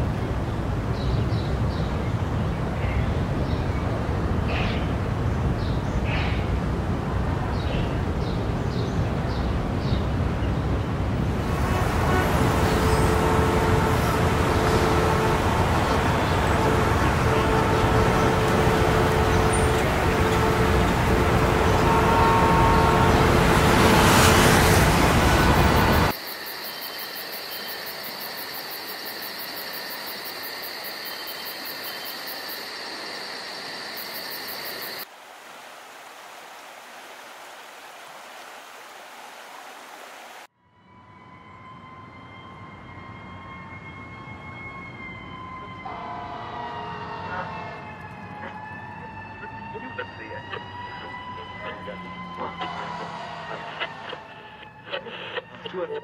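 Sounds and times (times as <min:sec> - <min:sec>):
city street traffic: 0:00.0 - 0:26.2, 0:40.7 - 0:56.0
distant siren wailing: 0:11.4 - 0:35.1, 0:40.6 - 0:56.0.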